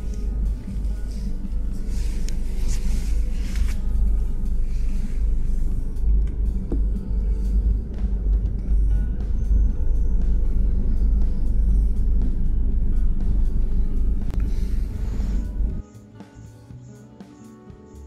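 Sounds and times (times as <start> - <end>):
train rumbling: 0.0 - 15.8.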